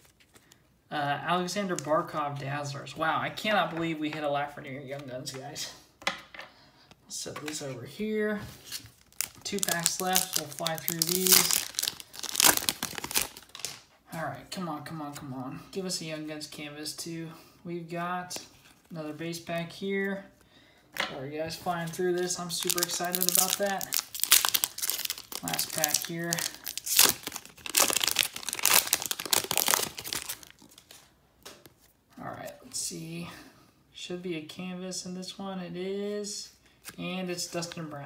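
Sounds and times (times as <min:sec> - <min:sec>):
wrapper tearing and crinkling: 0:08.7 - 0:13.9, 0:21.8 - 0:31.1.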